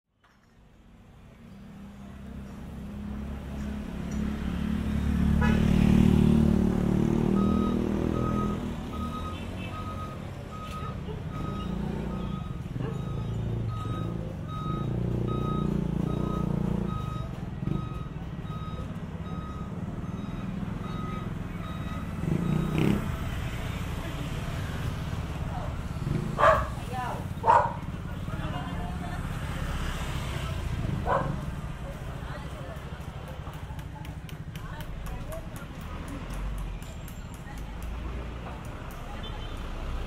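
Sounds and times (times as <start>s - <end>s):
vehicle engines passing: 0.3s - 40.0s
electronic beeping: 7.3s - 23.0s.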